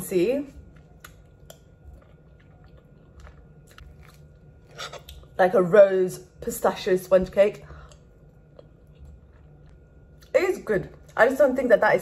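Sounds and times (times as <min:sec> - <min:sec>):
person chewing: 0:00.5 - 0:05.4, 0:07.8 - 0:10.3.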